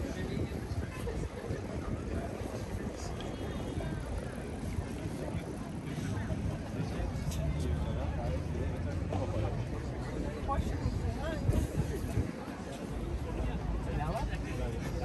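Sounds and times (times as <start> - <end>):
people talking indistinctly: 0.0 - 15.0
traffic rumble: 0.0 - 15.0.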